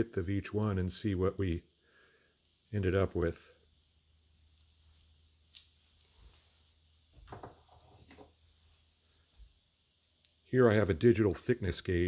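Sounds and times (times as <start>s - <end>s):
soft knocks and rustles: 7.1s - 8.5s.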